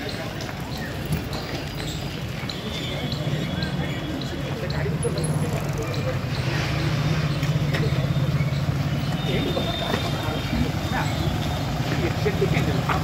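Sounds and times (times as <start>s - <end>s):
people's voices: 0.0s - 13.0s.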